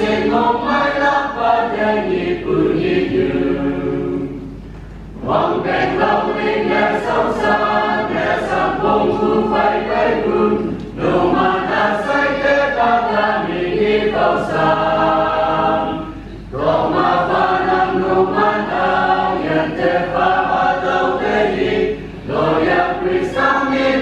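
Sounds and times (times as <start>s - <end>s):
mixed choir singing a hymn: 0.0s - 24.0s.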